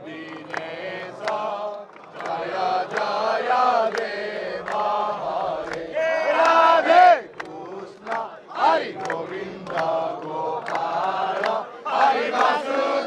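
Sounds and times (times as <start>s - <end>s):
group chanting: 0.0s - 13.0s
sharp hand claps: 0.1s - 12.6s.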